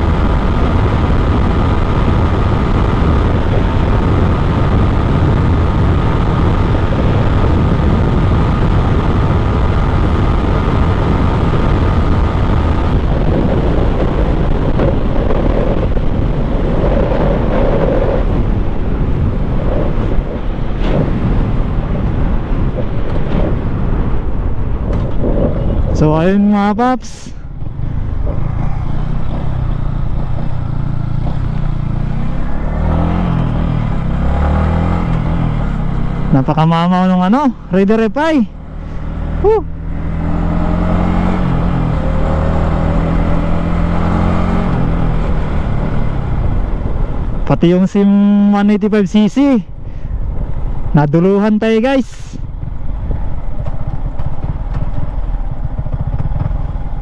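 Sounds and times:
motorcycle engine accelerating: 0.0 - 26.7, 27.4 - 47.5, 52.4 - 57.0
heavy wind rush over microphone: 0.0 - 57.0
motorcycle engine running: 27.4 - 47.5, 52.4 - 57.0.

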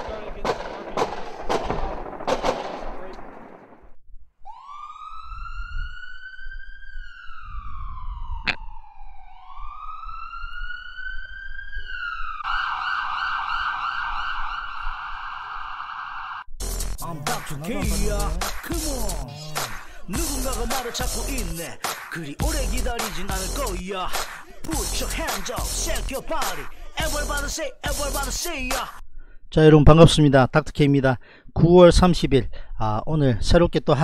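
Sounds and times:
loud cracking noise: 0.0 - 3.9, 21.8 - 22.2
siren wailing: 4.4 - 16.4
hip-hop beat music: 16.6 - 29.0.

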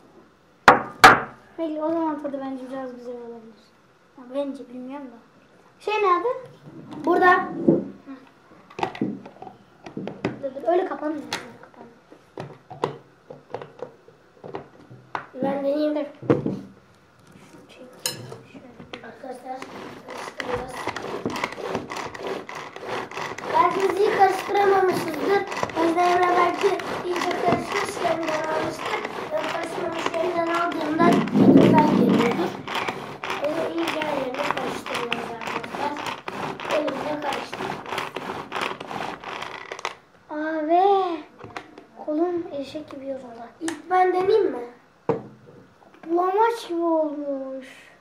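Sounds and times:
child speaking: 1.6 - 8.3, 10.2 - 12.0, 15.3 - 16.3, 17.4 - 38.2, 40.3 - 44.8, 46.0 - 48.0
food chopper blades rattling: 19.3 - 40.0
pull cord being pulled: 19.6 - 40.0.

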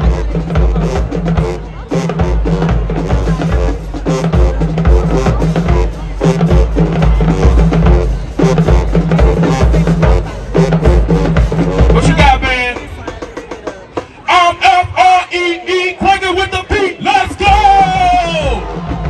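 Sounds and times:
bass drums pounding: 0.0 - 13.9, 17.3 - 19.0
drumline: 0.0 - 19.0
marching band brass: 0.0 - 19.0.

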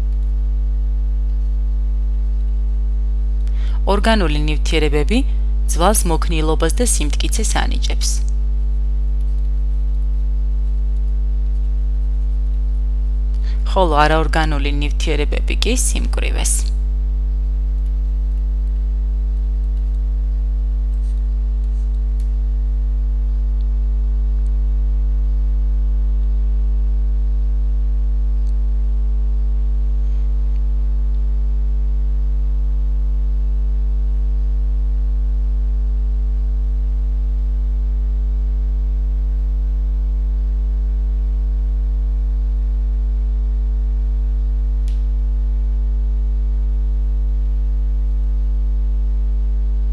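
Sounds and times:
electrical mains hum: 0.0 - 49.9.

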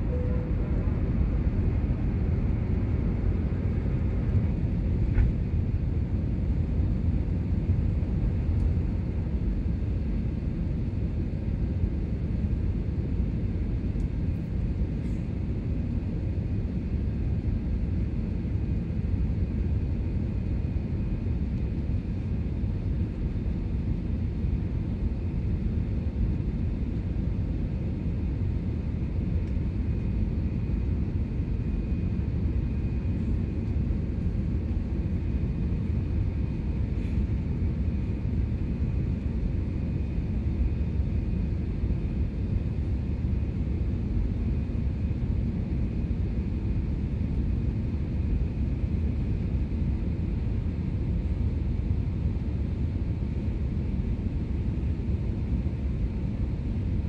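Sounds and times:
faint high whine: 0.0 - 3.2
jet engine cabin rumble: 0.0 - 57.0.

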